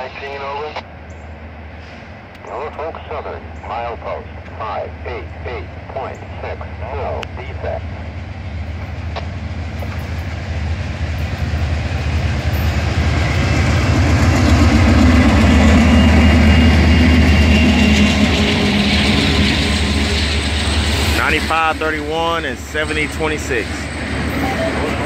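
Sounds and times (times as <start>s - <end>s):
diesel locomotives passing: 0.7s - 25.0s
freight cars rumbling by: 3.5s - 25.0s.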